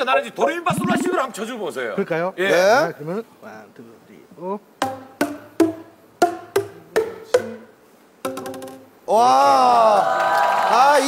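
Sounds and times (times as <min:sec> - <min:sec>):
plastic percussion tubes struck: 0:04.8 - 0:08.9.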